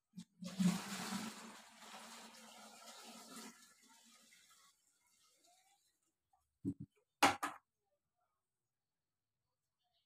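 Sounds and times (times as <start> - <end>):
water pouring into watering can: 0.2 - 6.0.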